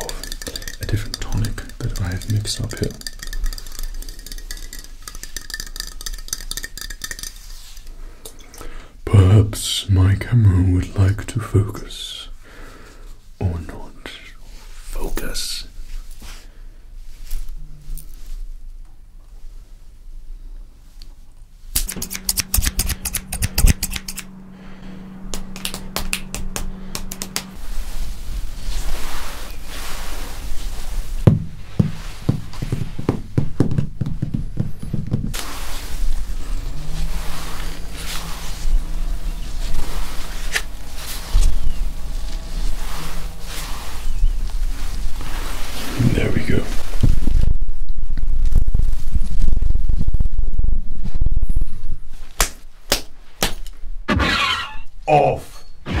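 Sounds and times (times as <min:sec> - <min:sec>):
tapping and handling noises: 0:00.0 - 0:07.9, 0:25.3 - 0:27.6, 0:31.3 - 0:35.5
low steady hum: 0:00.0 - 0:56.0
sharp clicks and snips: 0:21.7 - 0:24.3.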